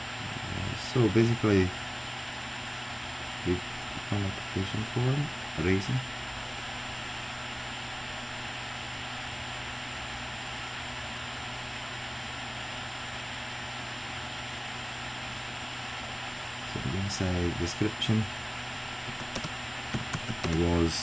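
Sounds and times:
low even hum: 0.0 - 21.0.

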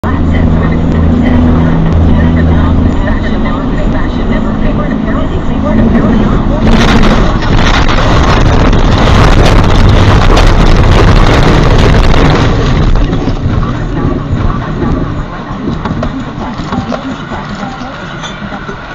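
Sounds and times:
diesel truck engine running: 0.0 - 18.9
truck crash with bangs: 6.6 - 13.5.

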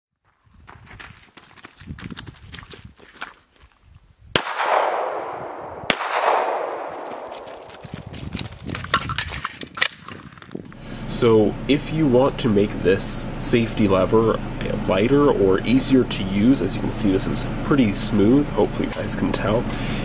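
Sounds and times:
gunshots with echo: 4.4 - 7.9
faint clicks and shuffling: 7.1 - 10.8.

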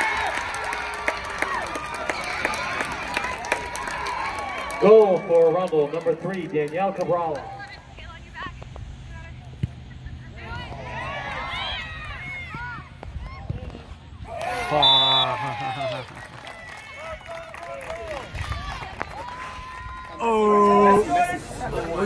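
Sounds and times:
steady low hum: 5.9 - 17.2.

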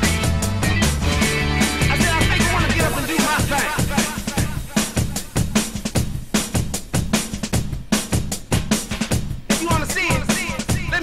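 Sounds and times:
drum break: 0.0 - 11.0.

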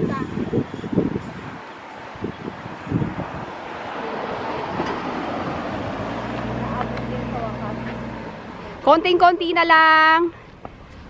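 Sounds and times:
vehicle engine humming: 0.0 - 11.0
wind buffeting microphone: 0.0 - 11.0.

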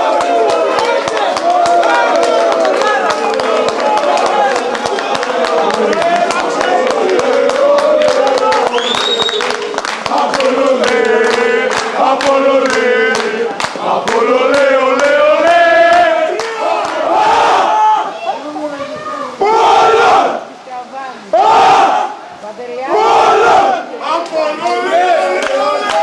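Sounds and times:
hand-clapping: 0.0 - 17.0, 24.2 - 24.4, 25.3 - 26.0
crowd singing a chant: 0.0 - 17.8
crowd shouting chants: 0.0 - 20.6, 21.2 - 26.0.

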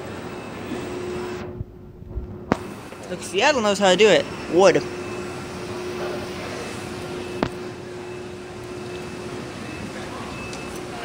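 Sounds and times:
escalator hum and hiss: 0.0 - 11.0.

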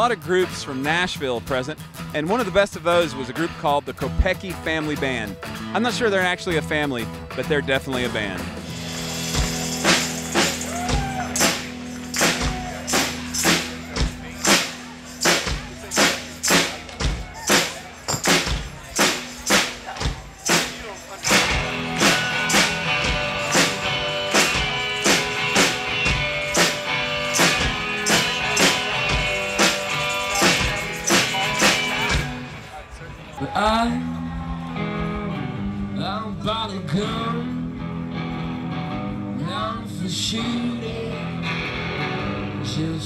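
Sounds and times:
live band playing: 0.0 - 33.2
tambourine: 8.6 - 32.4
hand claps: 11.4 - 13.6.

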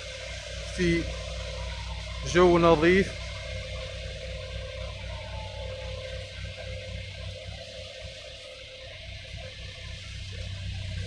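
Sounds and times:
diesel engines idling: 0.0 - 11.0.

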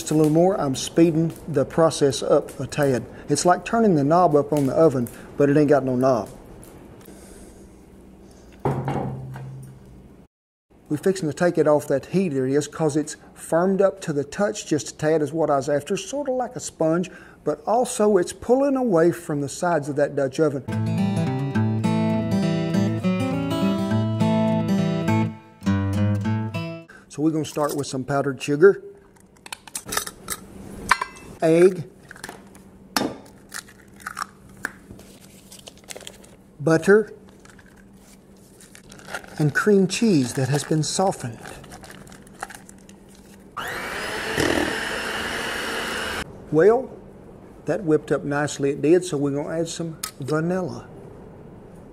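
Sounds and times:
egg cracking on bowl rim: 33.2 - 34.8
eggshell clicks and crackles: 33.3 - 34.9.

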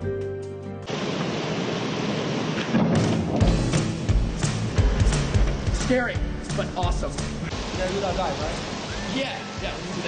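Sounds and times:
background music with deep beat: 3.4 - 7.5.

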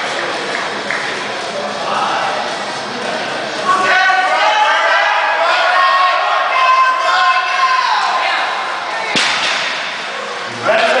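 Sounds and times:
spectators shouting: 3.6 - 9.2.

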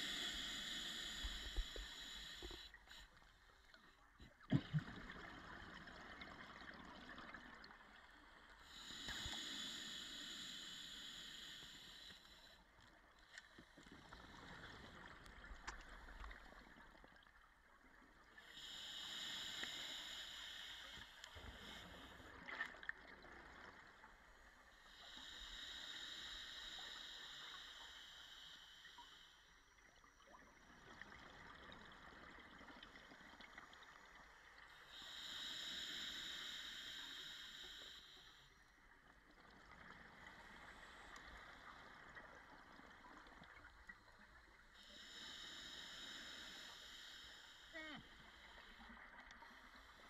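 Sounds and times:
underwater exhaust bubbles: 4.3 - 12.4.

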